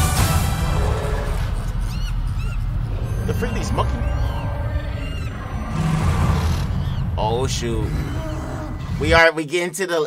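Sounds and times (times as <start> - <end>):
short chirping calls: 1.7 - 8.9.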